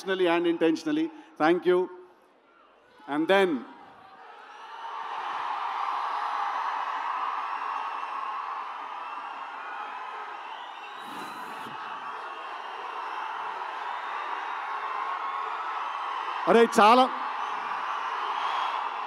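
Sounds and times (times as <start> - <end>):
crowd cheering and whooping: 4.1 - 19.0.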